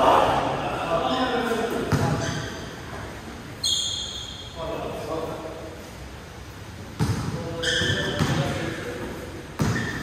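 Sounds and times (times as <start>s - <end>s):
basketball bouncing on floor: 7.0s - 8.5s, 9.6s - 10.0s.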